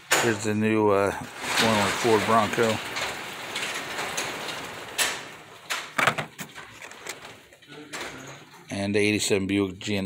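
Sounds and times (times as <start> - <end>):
cardboard and plastic packages rustling: 1.1 - 8.5.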